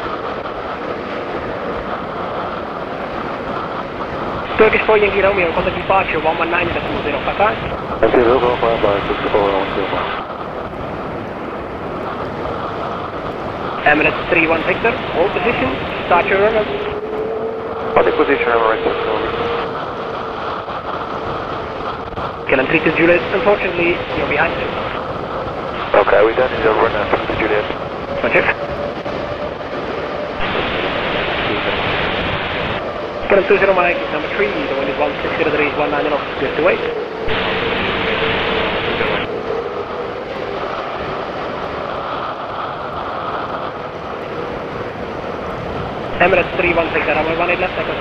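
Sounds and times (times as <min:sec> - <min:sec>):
jet engines at takeoff thrust: 0:00.0 - 0:48.0
radio channel hiss: 0:04.4 - 0:10.4, 0:13.6 - 0:28.6, 0:30.4 - 0:39.4, 0:46.1 - 0:48.0.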